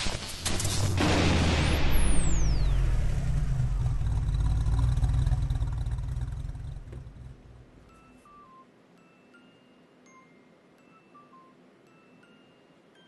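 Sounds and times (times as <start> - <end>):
low rumble: 0.0 - 7.8
high whistle sliding down: 2.0 - 3.0.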